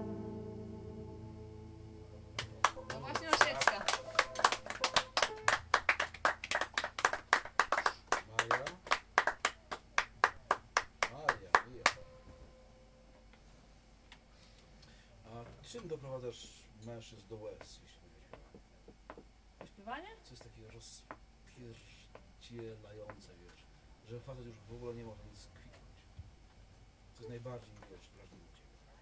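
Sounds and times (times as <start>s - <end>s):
piano chord: 0.0s - 5.8s, 11.8s - 13.2s
small audience applauding: 2.4s - 12.0s.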